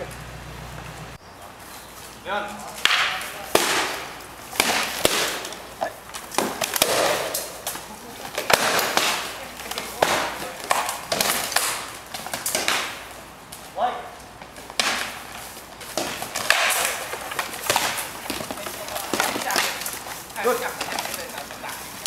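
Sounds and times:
weapons striking shields: 2.8 - 5.7, 6.3 - 7.6, 15.9 - 19.8
scuffling: 13.6 - 22.0
armour clatter: 14.6 - 22.0.

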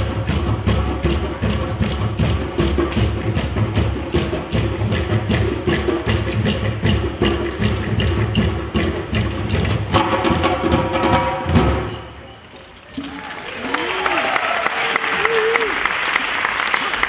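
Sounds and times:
hand drums playing fast rhythm: 0.0 - 11.9.

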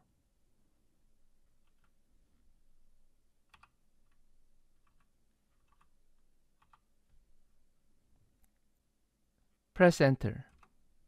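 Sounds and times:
keyboard typing: 1.6 - 2.0, 3.5 - 4.2, 4.8 - 6.0, 6.6 - 6.9.

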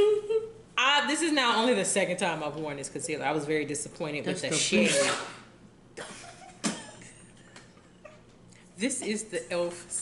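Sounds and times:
woman speaking: 0.8 - 5.3, 8.8 - 10.0.

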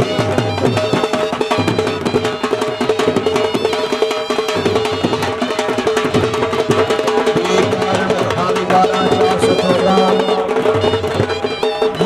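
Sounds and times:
fast dhol drum beat: 0.0 - 12.0
sustained melodic line: 7.4 - 12.0.

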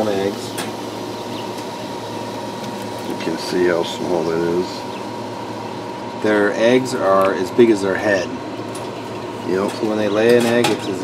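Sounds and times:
mechanical hum and hiss: 0.0 - 11.0.

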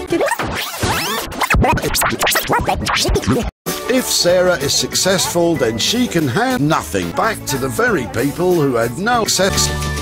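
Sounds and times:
record scratch sweeps: 0.1 - 3.5
music: 3.3 - 10.0.

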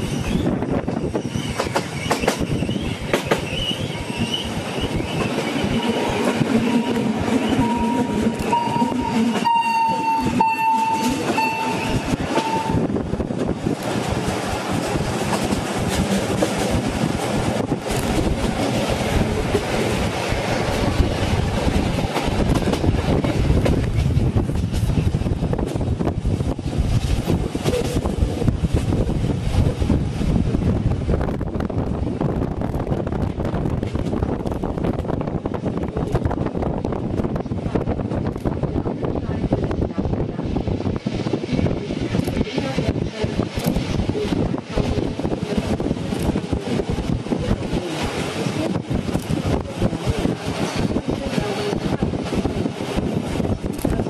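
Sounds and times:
train wheels clattering on track: 0.0 - 30.2, 39.4 - 54.0.

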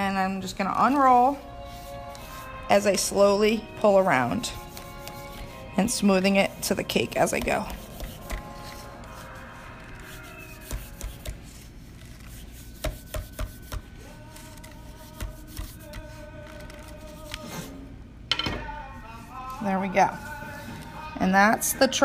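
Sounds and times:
faint background music: 0.0 - 22.0
hands tapping and rubbing fondant: 4.5 - 9.2, 9.9 - 17.5.

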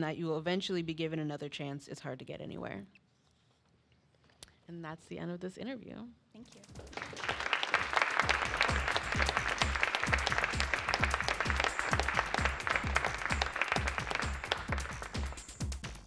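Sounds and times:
audience applauding: 6.8 - 16.0
electronic music with kick drum: 8.2 - 16.0.

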